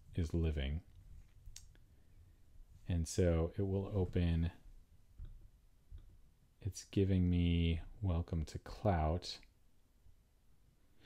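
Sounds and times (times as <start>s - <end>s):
man speaking: 0.0s - 0.9s, 2.9s - 4.6s, 6.6s - 9.4s.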